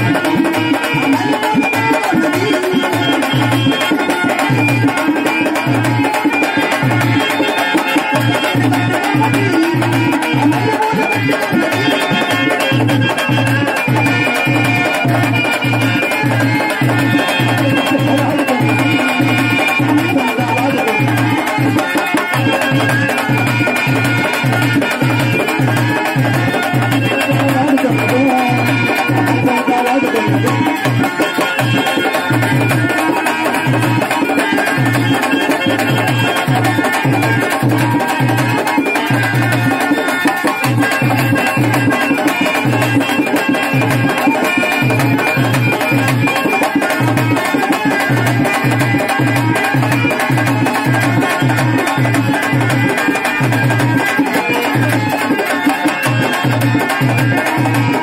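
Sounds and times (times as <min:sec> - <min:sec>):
hand drums beating: 0:00.0 - 0:58.0
held melody notes: 0:00.0 - 0:58.0.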